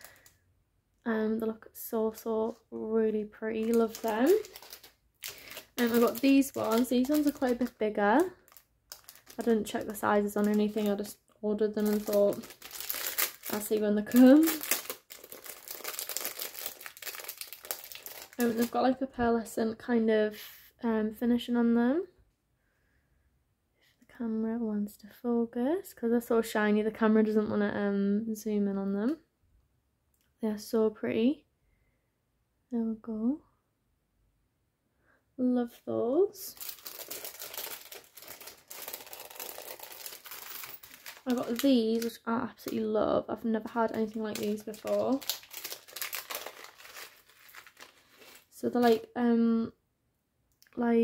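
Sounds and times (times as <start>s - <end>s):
plastic packaging crinkling: 0.0s - 0.4s, 2.1s - 19.0s, 36.4s - 43.0s, 43.6s - 49.1s.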